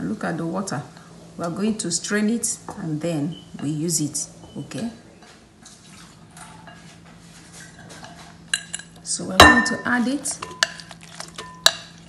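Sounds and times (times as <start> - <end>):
soft brushing noises: 6.7 - 8.4.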